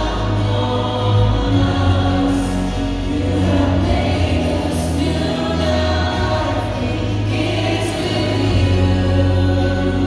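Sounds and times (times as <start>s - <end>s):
choir singing worship song: 0.0s - 10.0s
live band playing: 0.0s - 10.0s
sustained low bass notes: 0.0s - 10.0s.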